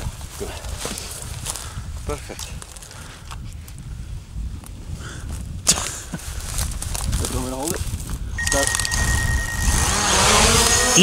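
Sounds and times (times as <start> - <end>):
wind buffeting microphone: 0.0 - 11.0
steady high whine: 8.4 - 11.0.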